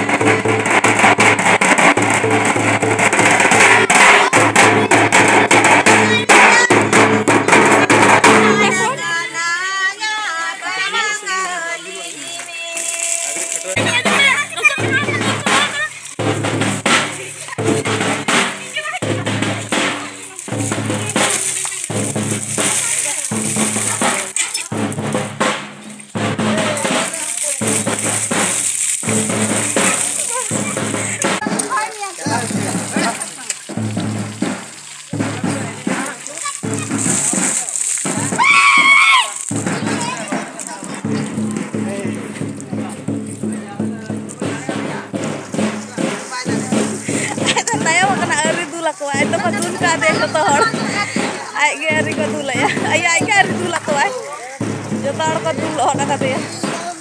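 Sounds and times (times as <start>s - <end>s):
large drums beaten with sticks: 0.0s - 9.4s, 12.8s - 57.0s
voices: 2.2s - 57.0s.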